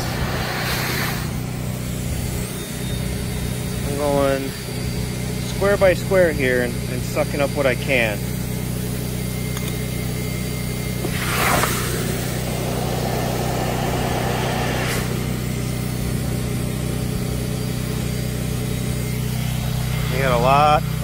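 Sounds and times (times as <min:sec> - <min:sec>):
vacuum droning: 0:00.0 - 0:06.4, 0:08.9 - 0:21.0.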